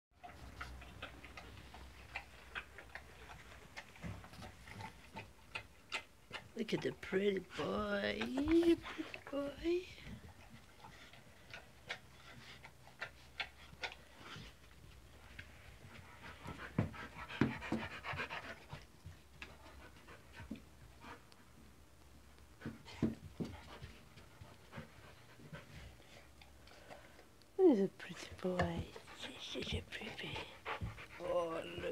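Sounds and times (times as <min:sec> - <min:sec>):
dog panting: 0:00.2 - 0:21.7, 0:22.5 - 0:31.9.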